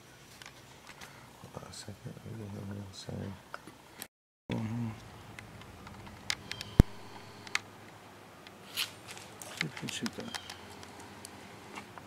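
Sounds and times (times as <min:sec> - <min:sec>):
sharp click: 0:06.3 - 0:07.7.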